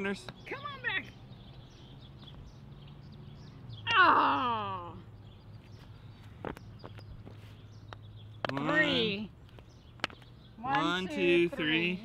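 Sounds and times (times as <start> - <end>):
person exclaiming oh: 3.9 - 5.0.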